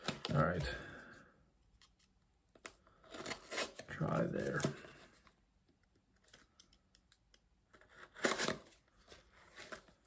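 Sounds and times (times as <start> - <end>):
packaging rustling and scraping: 2.9 - 5.4, 7.7 - 10.0.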